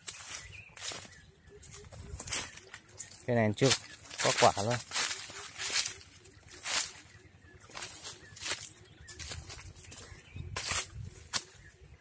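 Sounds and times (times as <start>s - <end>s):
footsteps crunching dry leaves: 0.0s - 11.9s.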